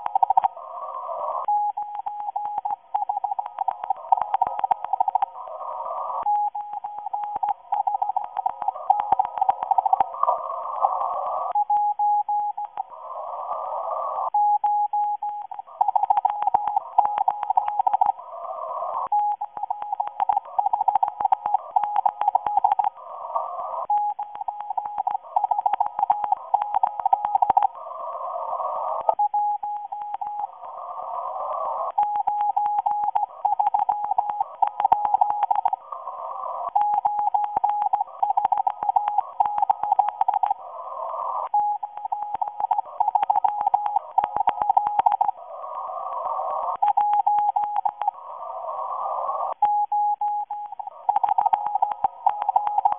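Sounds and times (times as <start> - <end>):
crackling radio static: 0.0 - 52.9
morse code beeping tone: 49.6 - 52.9.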